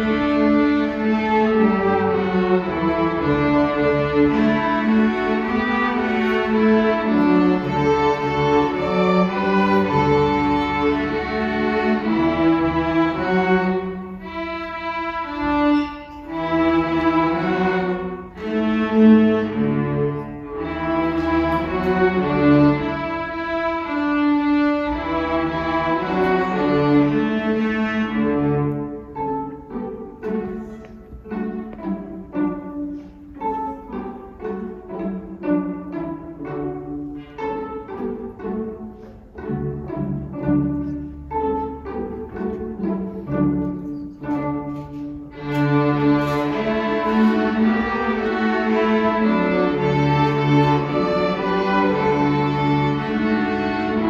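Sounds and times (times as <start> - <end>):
string orchestra playing chords: 0.0 - 54.0.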